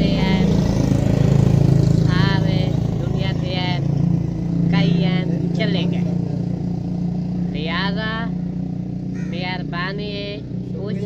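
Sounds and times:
low engine drone: 0:00.0 - 0:11.0
man speaking: 0:04.8 - 0:06.4.

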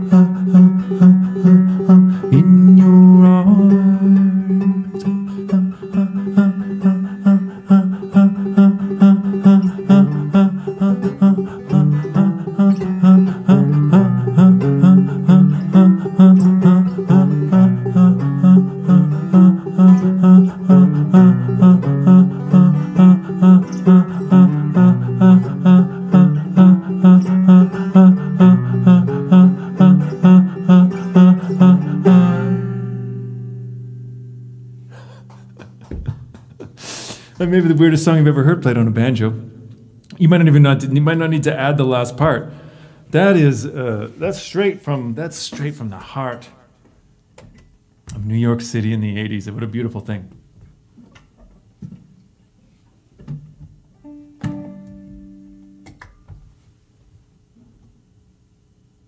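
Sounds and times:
banjo picking: 0:00.0 - 0:42.5, 0:54.0 - 0:56.0.

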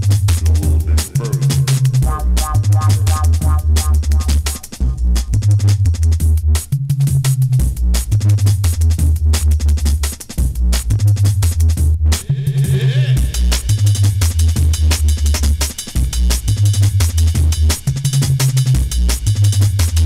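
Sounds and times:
deep sub-bass line: 0:00.0 - 0:20.0
fast breakbeat drums: 0:00.0 - 0:20.0
repeating synth figure: 0:01.1 - 0:04.8.

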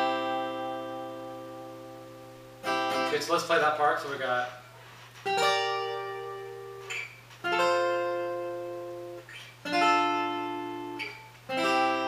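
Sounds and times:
acoustic guitar chords: 0:00.0 - 0:12.0.

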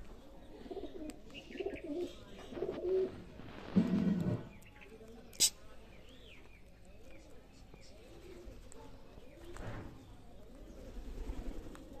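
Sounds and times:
pigeons cooing: 0:00.5 - 0:03.2.

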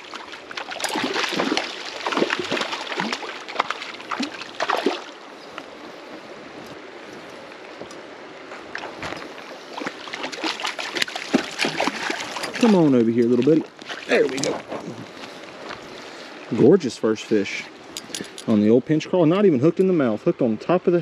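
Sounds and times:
fish splashing at water surface: 0:00.0 - 0:05.2, 0:09.7 - 0:12.9
stream flowing: 0:00.0 - 0:21.0.

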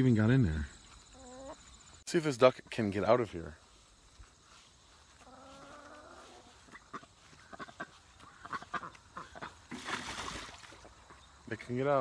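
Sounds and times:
duck calling: 0:05.2 - 0:09.7
water splashing: 0:09.4 - 0:11.0.

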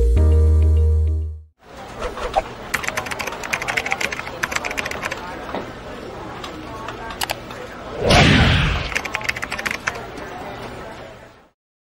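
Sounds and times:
computer keyboard typing: 0:02.7 - 0:05.3, 0:08.9 - 0:10.0.

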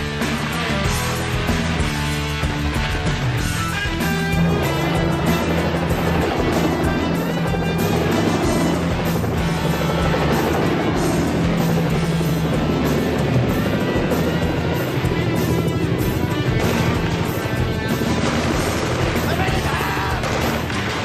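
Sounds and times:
helicopter rotor and engine: 0:00.0 - 0:21.0
loud rock music: 0:00.0 - 0:21.0.

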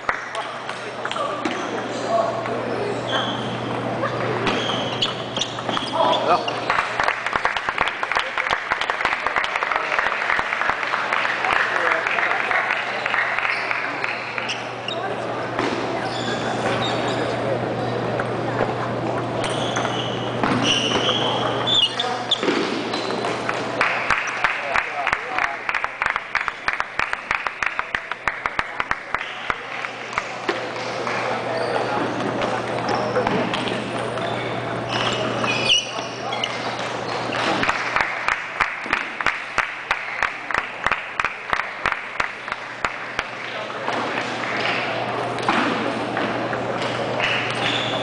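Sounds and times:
hubbub of voices: 0:00.0 - 0:26.1, 0:26.7 - 0:48.0.

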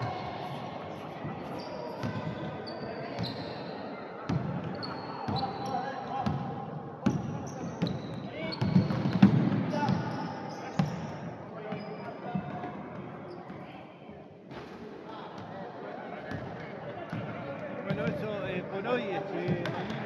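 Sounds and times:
voices echoing in hall: 0:00.0 - 0:20.0
sneaker squeaks: 0:01.4 - 0:06.4, 0:07.0 - 0:13.7
basketball bouncing on wooden court: 0:08.6 - 0:10.0.

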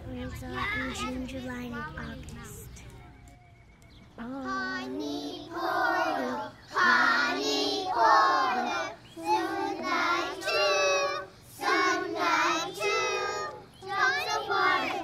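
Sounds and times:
children singing together: 0:04.4 - 0:15.0.

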